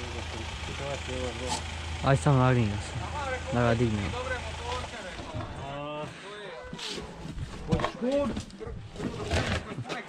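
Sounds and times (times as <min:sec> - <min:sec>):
motor idling: 0:00.0 - 0:05.9
people talking: 0:00.0 - 0:07.0, 0:09.4 - 0:10.0.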